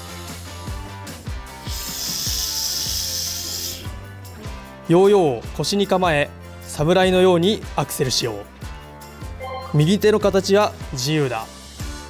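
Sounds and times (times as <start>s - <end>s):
yo-yo spinning whir: 1.7s - 3.9s
background music with low beat: 7.9s - 11.0s.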